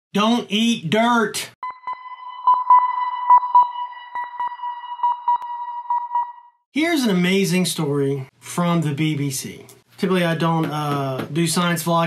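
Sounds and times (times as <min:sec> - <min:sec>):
steady electronic tone: 0:01.6 - 0:06.7.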